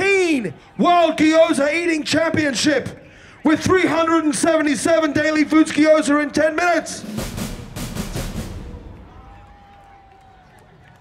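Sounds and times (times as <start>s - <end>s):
low drum roll: 7.0s - 10.2s.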